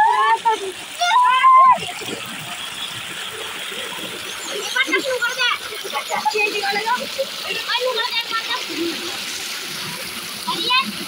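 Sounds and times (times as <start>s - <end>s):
boys shouting: 0.0s - 1.9s
water gushing into a tank: 0.0s - 11.0s
water splashing: 0.0s - 11.0s.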